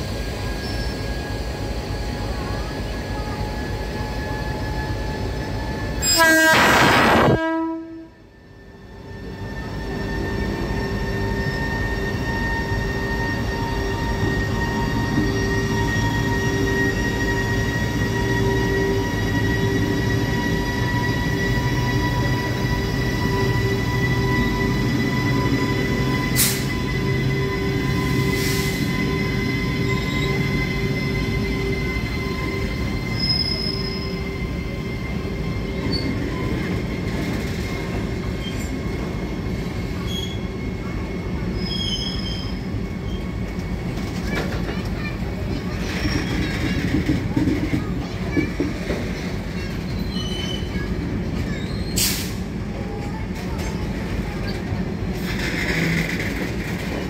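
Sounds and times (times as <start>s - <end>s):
electric locomotive whining: 0.0s - 57.0s
high wheel squeals: 9.3s - 38.9s, 49.7s - 50.9s.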